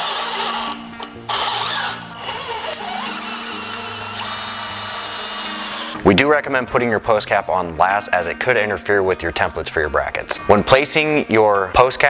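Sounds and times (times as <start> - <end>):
cordless drill driving screws: 0.0 - 6.0.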